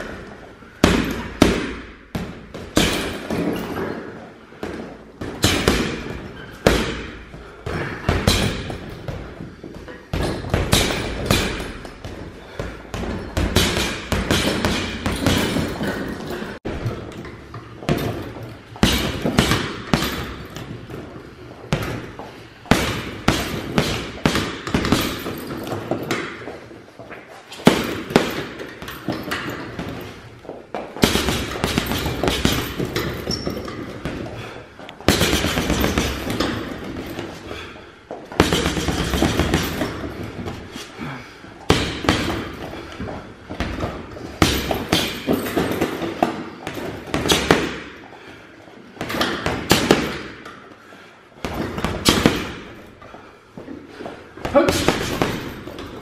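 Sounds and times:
gloves punching heavy bag: 0.0 - 26.7, 27.5 - 50.6, 51.4 - 56.0.

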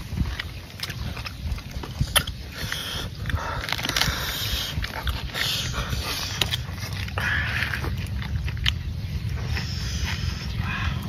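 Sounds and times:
low rumble: 0.0 - 11.0
wet chewing and slurping: 0.0 - 11.0.

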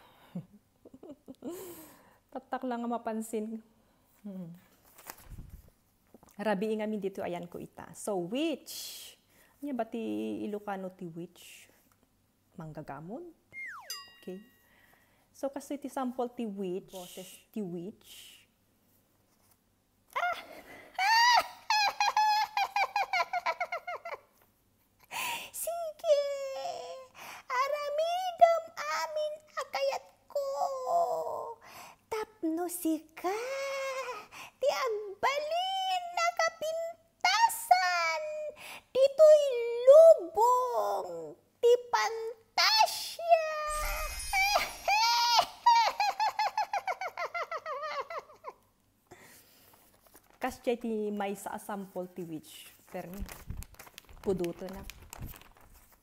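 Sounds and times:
woman's wavering witch call: 13.5 - 14.6, 43.6 - 46.1
woman cackling: 20.2 - 24.2, 43.7 - 48.5.

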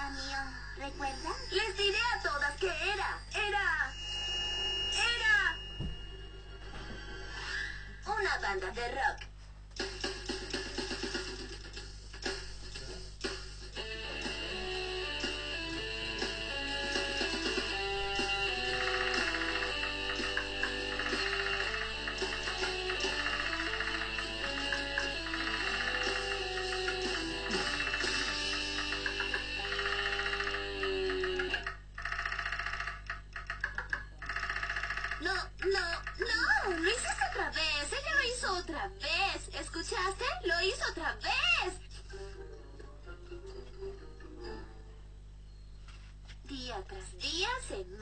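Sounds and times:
rock music with guitar and drums: 13.2 - 29.6.

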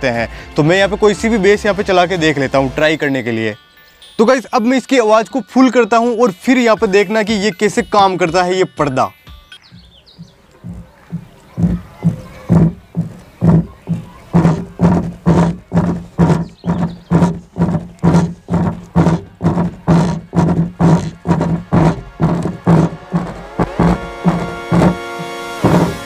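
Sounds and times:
deep bass drum thumps: 9.7 - 26.0.

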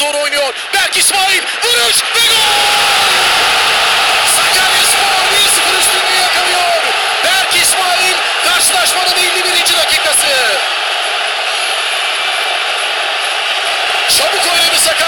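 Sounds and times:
stadium crowd cheering: 0.0 - 15.0.

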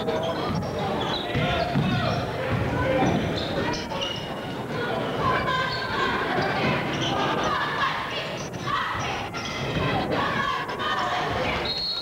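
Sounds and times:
crowd voices in gym: 0.0 - 12.0.

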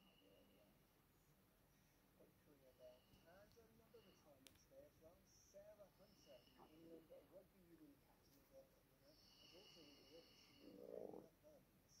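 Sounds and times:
faint high whine: 0.0 - 12.0
faint distant voice: 1.8 - 12.0.

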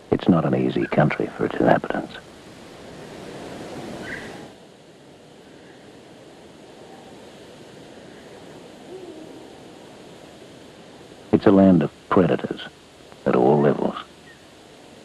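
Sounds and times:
soft steady hiss: 0.0 - 15.0
low hoot-like call: 6.8 - 7.2, 8.0 - 10.0.

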